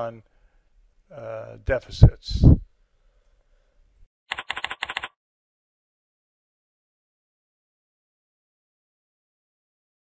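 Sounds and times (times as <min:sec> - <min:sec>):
keyboard keys clicking: 0:04.3 - 0:05.1.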